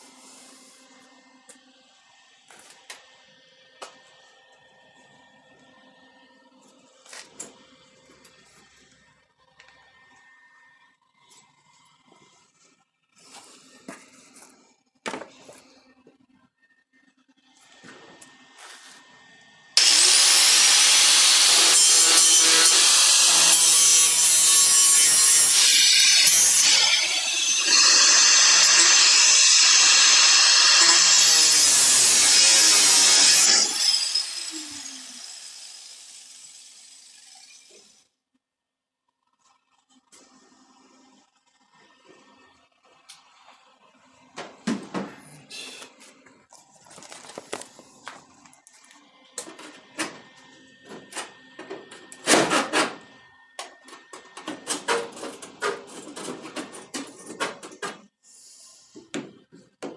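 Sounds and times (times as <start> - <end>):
angle grinder on steel: 19.8 - 38.0.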